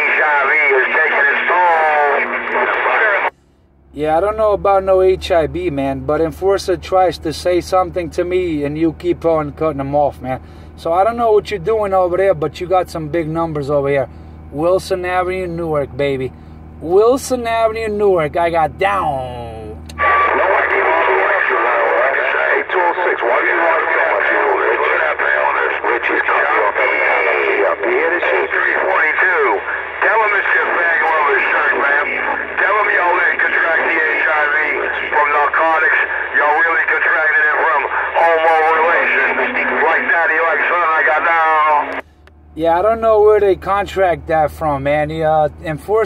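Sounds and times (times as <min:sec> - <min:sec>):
speech over radio speaker: 0:00.0 - 0:03.4, 0:04.0 - 0:46.0
steady low hum: 0:00.0 - 0:46.0.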